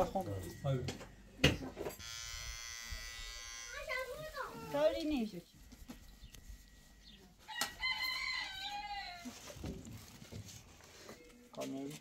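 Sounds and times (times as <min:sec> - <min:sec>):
rooster crowing: 0:07.5 - 0:09.5.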